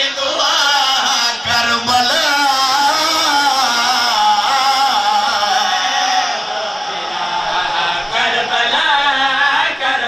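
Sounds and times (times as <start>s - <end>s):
man chanting a devotional verse: 0.0s - 10.0s.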